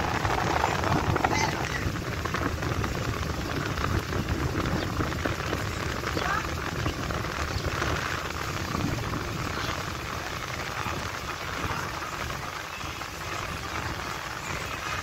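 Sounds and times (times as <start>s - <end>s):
moving vehicle rumble: 0.0s - 15.0s
road and wind hiss: 0.0s - 15.0s.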